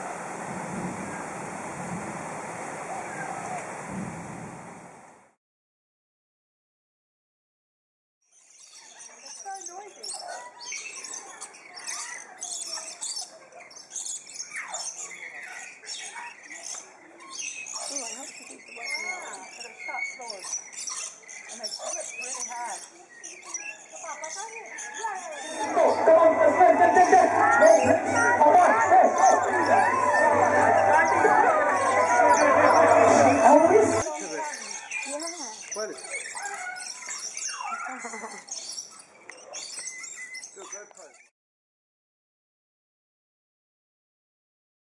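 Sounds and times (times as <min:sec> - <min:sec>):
chorus of birds chirping: 0:08.2 - 0:41.3.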